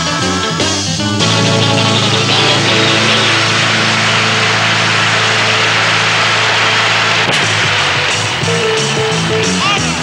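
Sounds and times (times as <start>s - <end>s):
cymbals wash: 1.2s - 8.8s
rock band holding chord: 1.2s - 10.0s.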